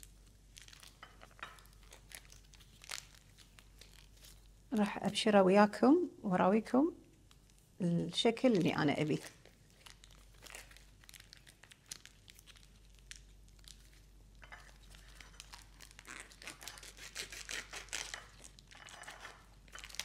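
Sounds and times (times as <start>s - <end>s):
plastic wrapping crinkling: 0.0s - 5.2s, 8.4s - 20.0s.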